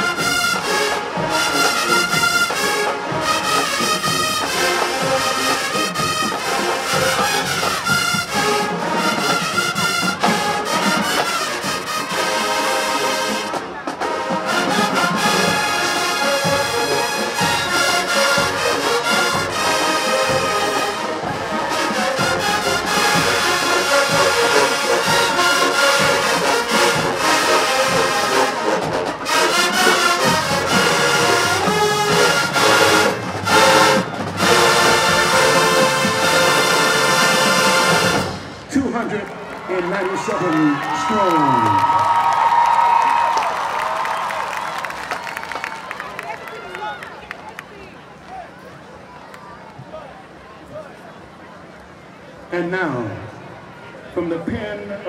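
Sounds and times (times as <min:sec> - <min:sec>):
brass band playing loudly: 0:00.0 - 0:47.2.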